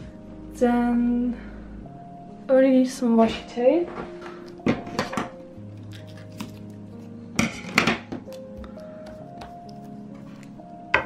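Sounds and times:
lofi background music: 0:00.0 - 0:11.0.

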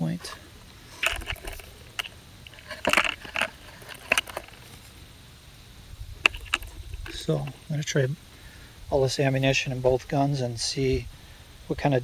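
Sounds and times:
metal cartridges clicking and rattling: 0:00.9 - 0:04.8, 0:06.2 - 0:07.6.

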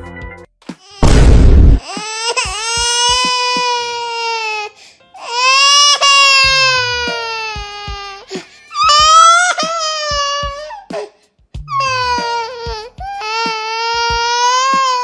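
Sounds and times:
background music with low beats: 0:00.0 - 0:04.0, 0:06.3 - 0:15.0
high-pitched crying wails: 0:01.8 - 0:11.1, 0:11.7 - 0:15.0.

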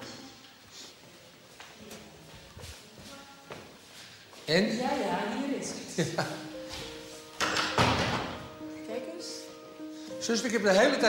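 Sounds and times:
quiet background music: 0:00.0 - 0:11.0
wooden cabinet door thuds: 0:07.5 - 0:08.4.

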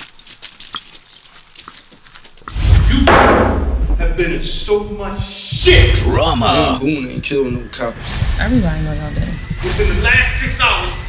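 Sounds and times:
deep rumbling hit: 0:02.5 - 0:11.0.

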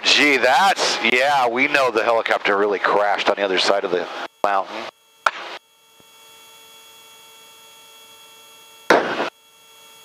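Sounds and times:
steady hum of fixed tones: 0:00.0 - 0:10.0.

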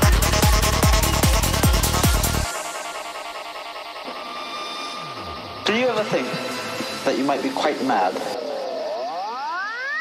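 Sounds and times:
layered synth textures: 0:00.0 - 0:10.0.

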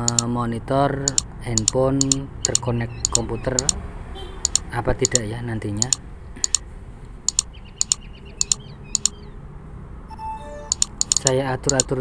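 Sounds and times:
mouse button clicks: 0:00.0 - 0:00.2, 0:01.1 - 0:03.8, 0:04.4 - 0:05.2, 0:05.8 - 0:06.6, 0:07.3 - 0:09.2, 0:10.6 - 0:11.9.

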